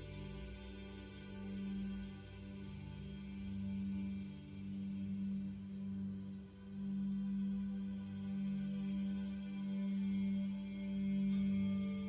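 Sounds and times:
ambient drone music: 0.0s - 12.0s.

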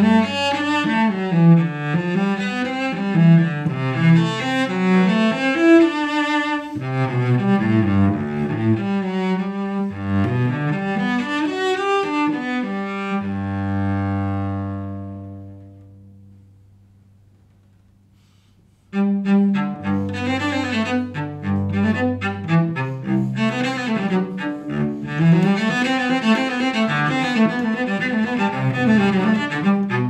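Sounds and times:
bowed cello: 0.0s - 16.8s, 18.2s - 30.0s.

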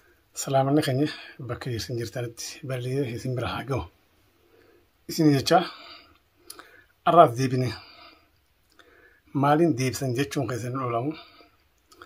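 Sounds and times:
man speaking: 0.4s - 4.0s, 5.1s - 6.0s, 7.0s - 8.0s, 9.3s - 11.4s.

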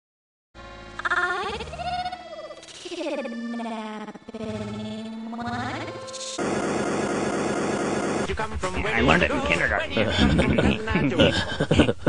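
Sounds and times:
steady drone: 0.6s - 12.0s
harsh dense noise burst: 6.4s - 12.0s.

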